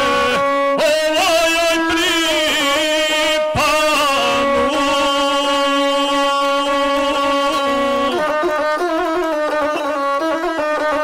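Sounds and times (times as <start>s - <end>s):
person singing: 0.0s - 8.4s
bowed single-string fiddle: 0.0s - 11.0s.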